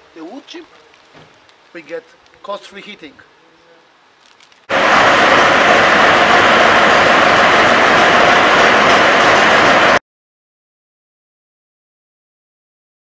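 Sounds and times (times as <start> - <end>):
woodchips pouring: 4.2 - 4.7
machinery noise: 4.7 - 10.0.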